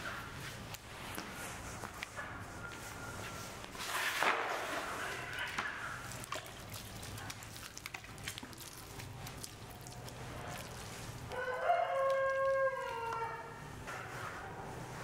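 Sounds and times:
metal ladle scraping plastic bucket: 3.8 - 6.2
rooster crowing: 11.3 - 13.6.

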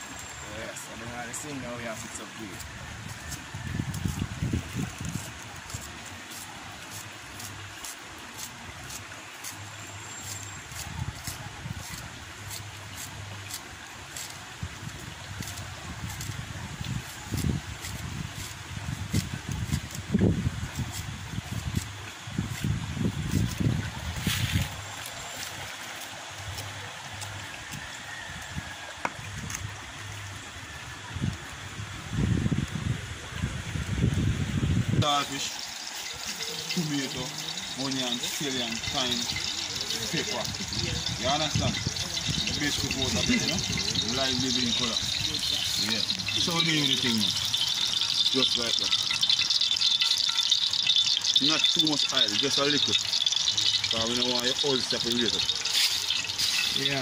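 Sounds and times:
river running over rocks: 22.1 - 32.0, 35.0 - 57.0.

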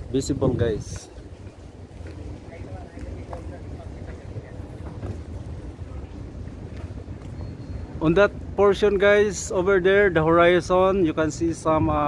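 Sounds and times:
wind rumble on microphone: 0.0 - 9.1, 10.9 - 12.0.

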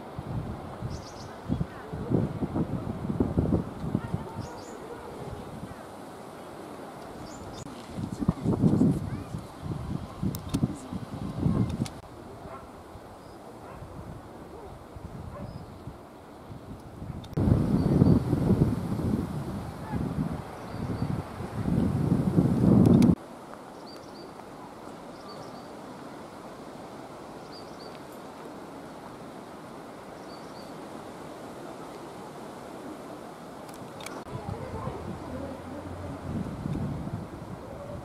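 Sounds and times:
wind buffeting microphone: 0.0 - 6.0, 6.8 - 23.2, 33.8 - 38.0
wind hiss: 0.0 - 38.0.

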